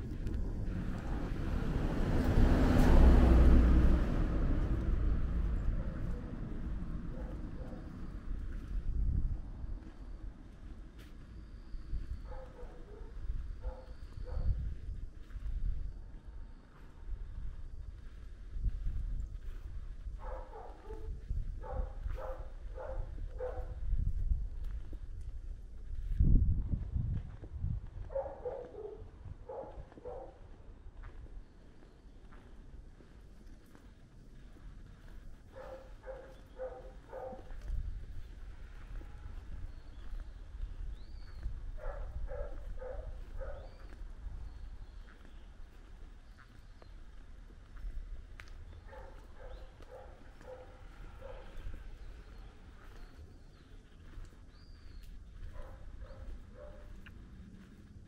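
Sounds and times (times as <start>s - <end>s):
wind rumble on microphone: 0.0s - 58.0s
dog barking: 7.1s - 8.0s, 12.2s - 14.6s, 20.2s - 23.8s, 28.0s - 30.4s, 35.5s - 37.7s, 41.8s - 43.8s, 48.8s - 51.8s, 55.5s - 57.0s.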